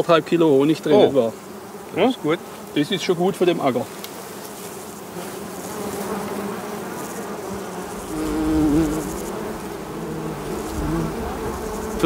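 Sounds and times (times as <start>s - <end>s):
bumblebees buzzing: 0.0s - 12.0s.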